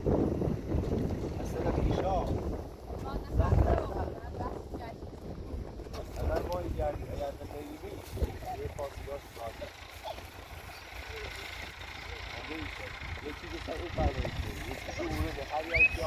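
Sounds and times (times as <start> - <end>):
wind rumbling on microphone: 0.0 - 9.5, 14.0 - 16.0
people talking quietly: 5.9 - 16.0.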